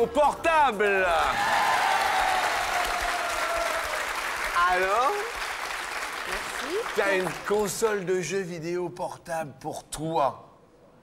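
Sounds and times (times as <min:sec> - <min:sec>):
audience applauding: 0:01.2 - 0:08.0.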